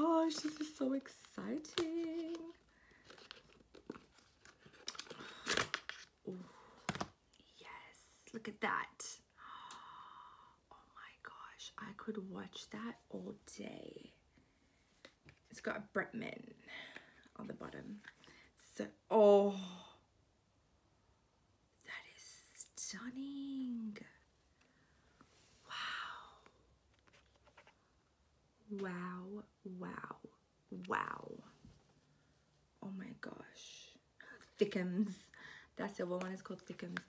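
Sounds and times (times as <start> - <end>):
small crinkles and scrapes: 0.0 - 6.2, 26.9 - 27.8, 36.0 - 37.0.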